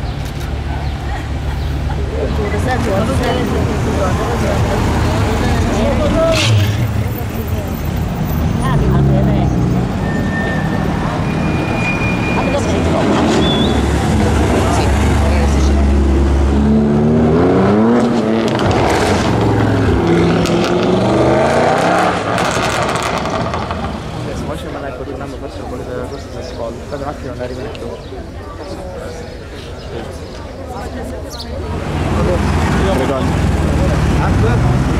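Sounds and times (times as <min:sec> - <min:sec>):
car engines accelerating: 0:00.0 - 0:34.9
engine revving: 0:12.4 - 0:24.6.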